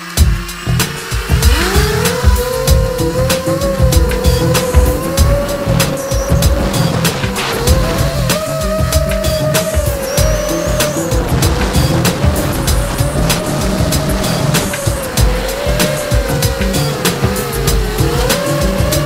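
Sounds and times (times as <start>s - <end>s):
funky background music: 0.0s - 19.0s
quadcopter motors whining: 0.0s - 19.0s.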